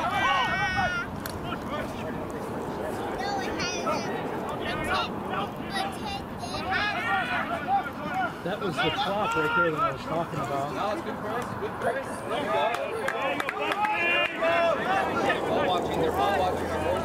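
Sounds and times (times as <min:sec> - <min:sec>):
spectators shouting: 0:00.0 - 0:02.1, 0:02.8 - 0:10.2, 0:12.0 - 0:17.0.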